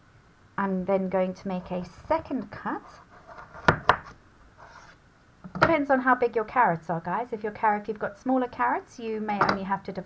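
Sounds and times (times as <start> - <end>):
knife chopping on cutting board: 3.6 - 4.1.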